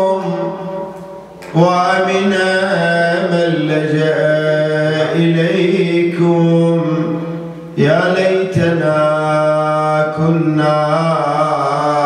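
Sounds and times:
man chanting into microphone: 0.0 - 12.0.

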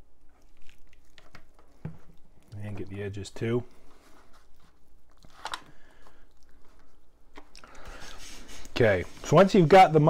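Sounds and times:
hands squishing meat: 0.0 - 7.8.

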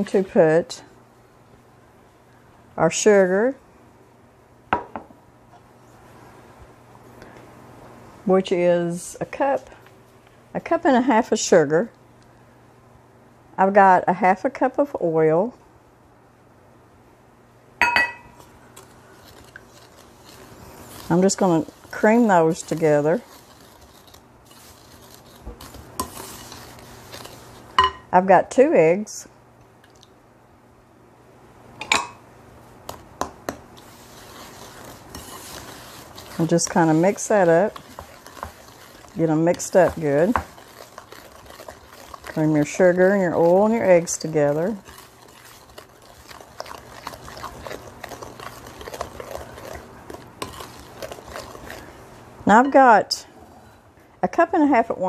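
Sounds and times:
spoon knocking on bowl: 17.8 - 18.3
wooden spoon scraping glass bowl: 18.4 - 27.7, 33.8 - 53.0.

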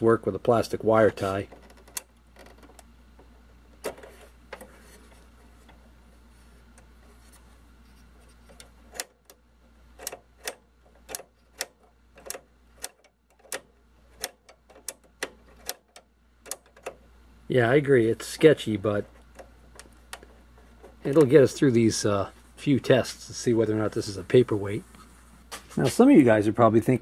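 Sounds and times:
cable tie ratchet clicks: 1.3 - 4.7, 8.4 - 17.0.

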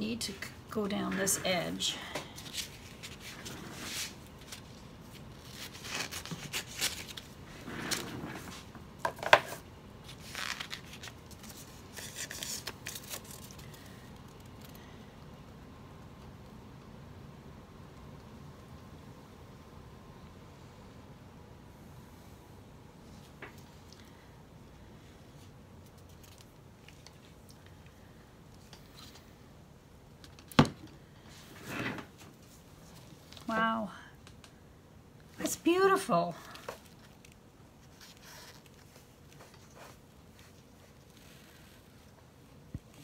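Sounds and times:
stiff paper rustling: 2.3 - 8.7, 9.4 - 14.0.

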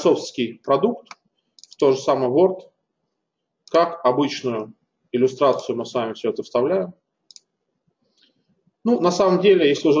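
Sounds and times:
computer mouse clicks: 1.0 - 1.8, 7.3 - 7.5.

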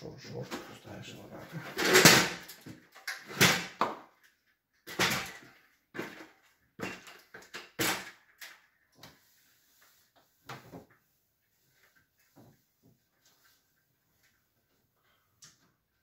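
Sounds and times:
plastic parts knocking and clattering: 1.6 - 9.1.

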